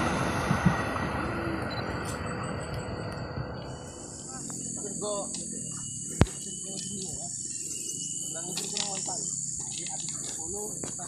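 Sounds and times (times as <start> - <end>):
high-pitched insect chorus: 1.6 - 11.0.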